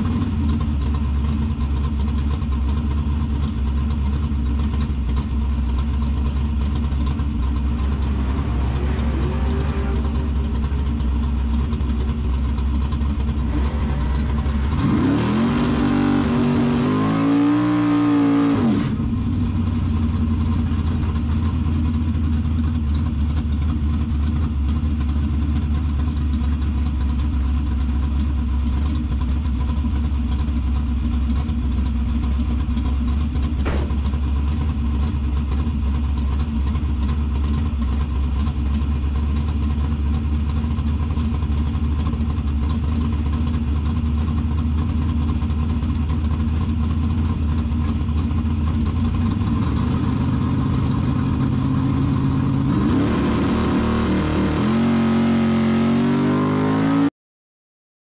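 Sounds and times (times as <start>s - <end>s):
truck engine idling and revving: 0.0s - 57.1s.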